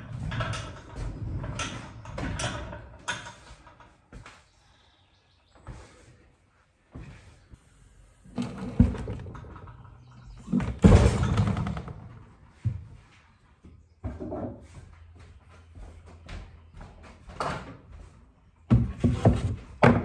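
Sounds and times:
heavy metal clunking and knocking: 0:00.0 - 0:04.0
metal clatter: 0:00.0 - 0:04.0.

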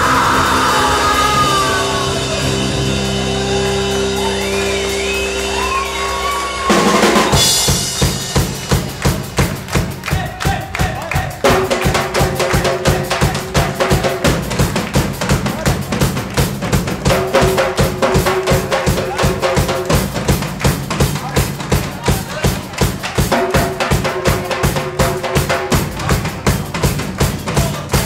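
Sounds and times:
drum kit playing fast beat: 0:00.0 - 0:28.0.

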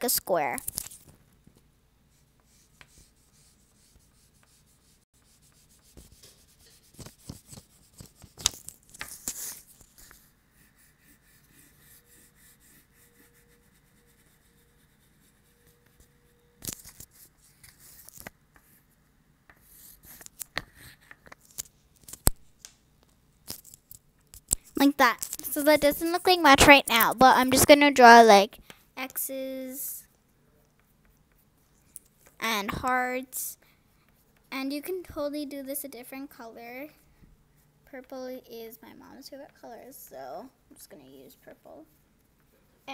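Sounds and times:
oil pastel scratching on paper: 0:02.1 - 0:19.0.

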